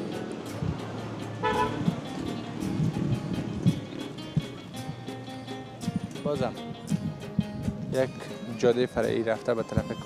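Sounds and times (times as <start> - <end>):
street traffic: 0.0 - 10.0
car horn toot: 1.4 - 1.9.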